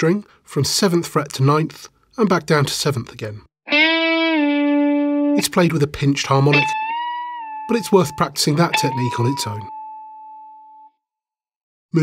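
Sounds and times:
electric guitar harmonic note: 0:03.7 - 0:05.4, 0:06.4 - 0:10.9.

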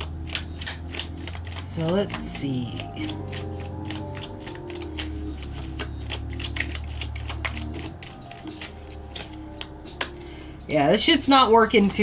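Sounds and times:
cards being shuffled: 0:00.0 - 0:10.4
soft background music: 0:00.0 - 0:12.0.

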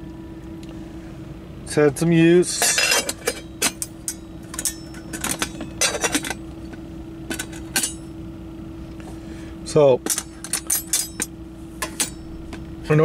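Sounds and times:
steady low hum: 0:00.0 - 0:13.0
metal pot and lid clinking: 0:02.6 - 0:06.4, 0:07.3 - 0:08.1, 0:10.1 - 0:12.3.

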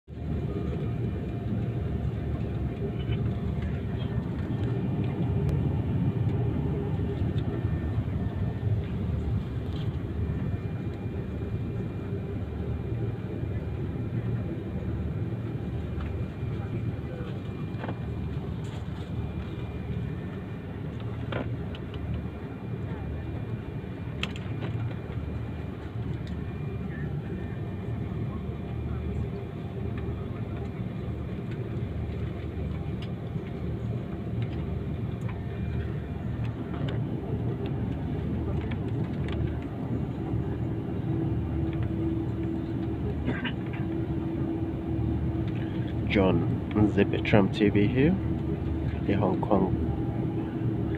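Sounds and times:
faint cabin voices: 0:00.1 - 0:50.9
jet engines rumbling: 0:00.1 - 0:50.9.

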